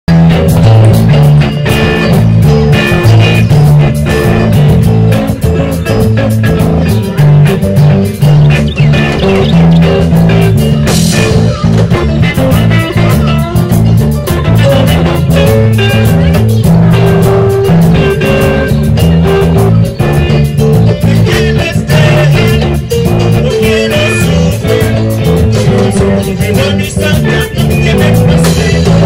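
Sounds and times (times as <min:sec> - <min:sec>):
loud rock music: 0:00.0 - 0:29.0.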